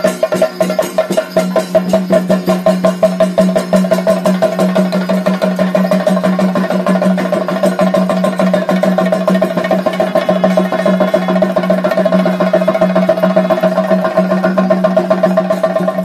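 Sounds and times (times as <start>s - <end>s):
fast dense temple drumming: 0.0s - 16.0s.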